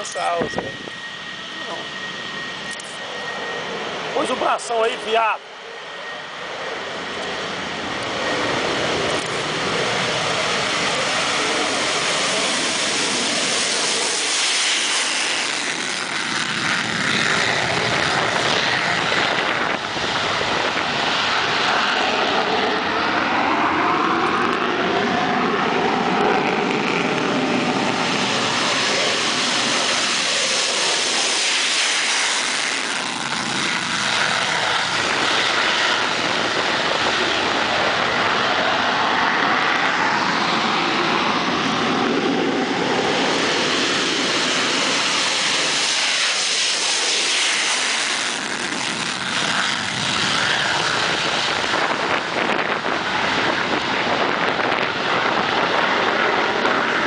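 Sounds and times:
jet engines roaring: 0.0 - 57.0.

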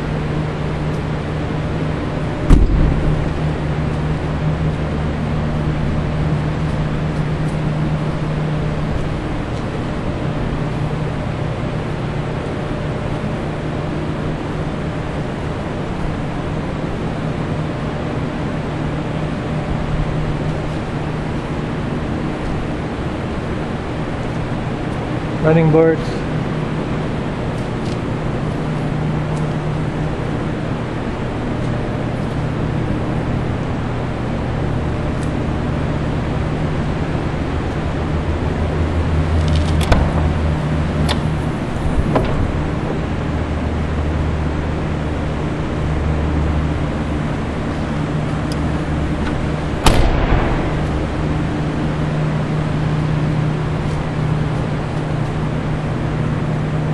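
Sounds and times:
low mechanical hum: 0.0 - 56.9
loud thump: 2.4 - 3.9, 49.8 - 52.2.

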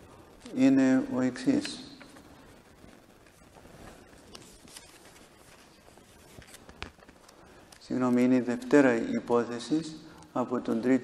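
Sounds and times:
man talking: 0.4 - 2.0, 7.8 - 11.0
paper rustling: 3.2 - 9.1.

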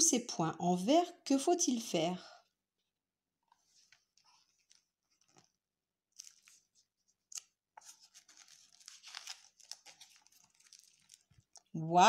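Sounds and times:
paper pages rustling: 3.5 - 11.8.

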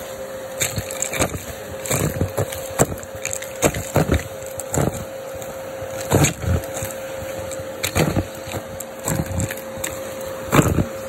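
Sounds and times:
vacuum cleaner motor whine: 0.0 - 11.0.

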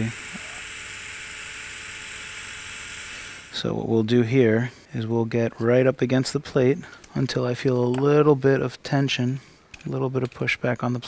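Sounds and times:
surgical drill whirring: 0.0 - 3.7.

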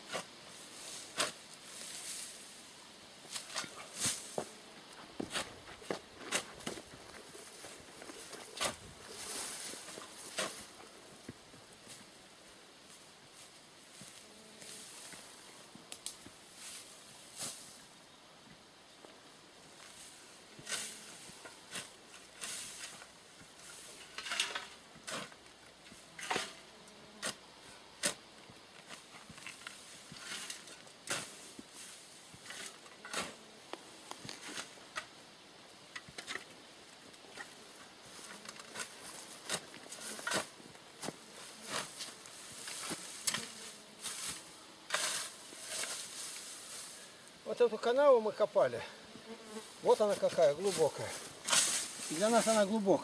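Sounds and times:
shovel chopping into soil: 1.1 - 1.4, 8.5 - 8.9.

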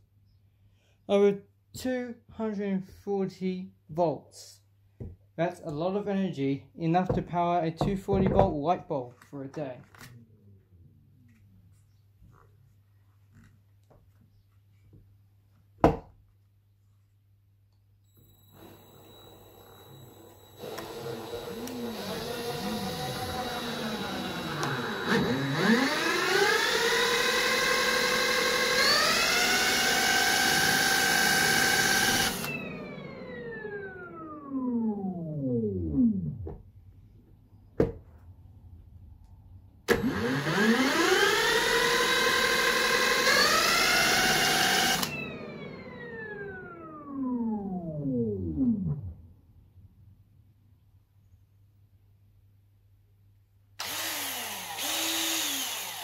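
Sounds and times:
power drill spinning: 18.1 - 35.4, 39.9 - 48.0, 53.8 - 56.0
motor whine rising in pitch: 18.1 - 36.5, 40.0 - 49.4, 53.8 - 56.0.

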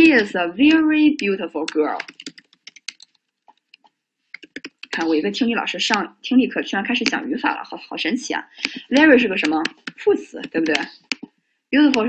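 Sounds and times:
keyboard typing clicks: 0.7 - 5.2, 8.6 - 11.3.

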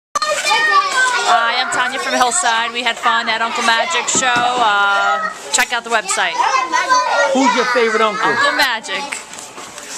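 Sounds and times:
children calling and talking: 0.2 - 9.9
woman talking: 1.3 - 6.4.

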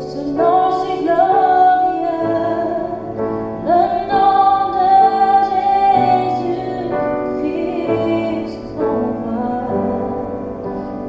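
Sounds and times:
woman singing: 0.0 - 10.7
piano accompaniment: 0.0 - 11.0.

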